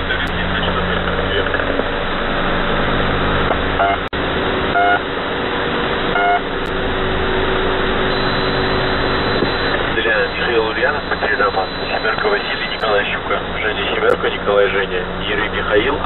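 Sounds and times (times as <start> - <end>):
radio voice: 0.0 - 1.9, 8.2 - 16.0
radio static hiss: 0.0 - 2.5, 6.0 - 16.0
low hum tones: 0.0 - 16.0
short radio beeps: 4.8 - 5.0, 6.2 - 6.4, 8.1 - 13.1.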